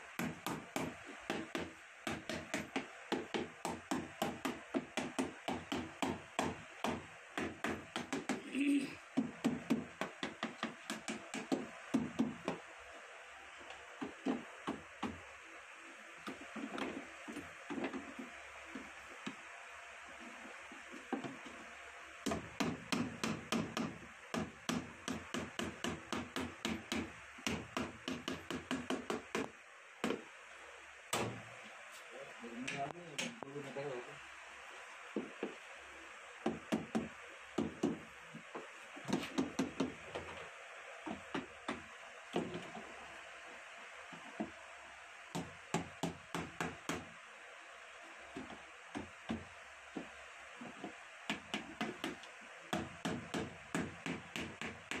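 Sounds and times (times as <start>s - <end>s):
hammer tapping on metal: 0.2s - 8.4s, 22.3s - 30.2s.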